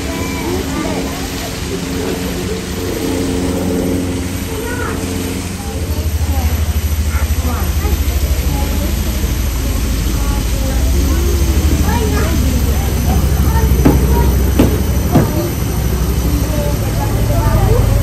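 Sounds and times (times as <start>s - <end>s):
children chattering: 0.0s - 18.0s
fluttering low rumble: 0.0s - 18.0s.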